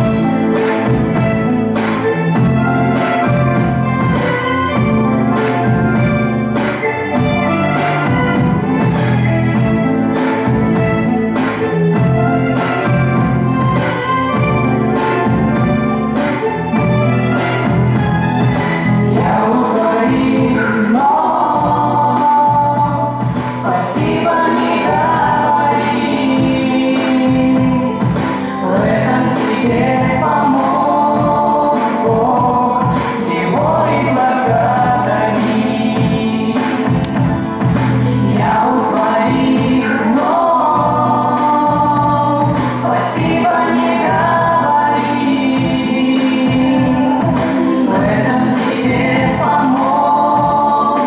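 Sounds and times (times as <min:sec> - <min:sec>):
musical accompaniment: 0:00.0 - 0:51.0
women singing a duet: 0:19.1 - 0:51.0.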